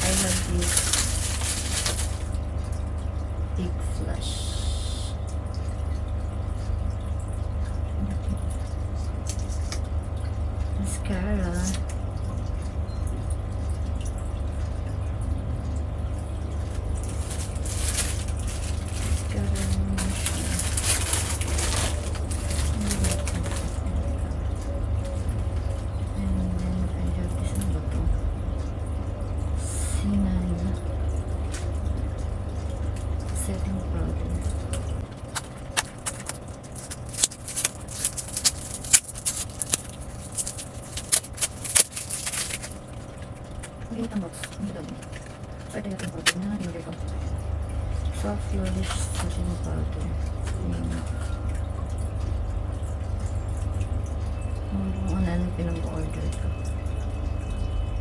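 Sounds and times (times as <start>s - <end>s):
plastic packaging rustling: 0.0s - 2.7s, 16.7s - 24.0s, 35.1s - 43.8s
steady low hum: 0.0s - 58.0s.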